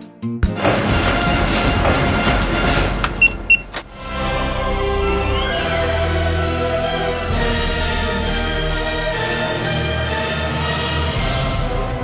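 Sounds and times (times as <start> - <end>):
keycard lock beeps: 3.2 - 3.9.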